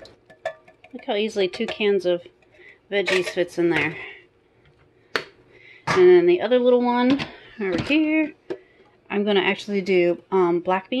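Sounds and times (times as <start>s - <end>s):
kitchenware clacking down: 0.0s - 4.1s.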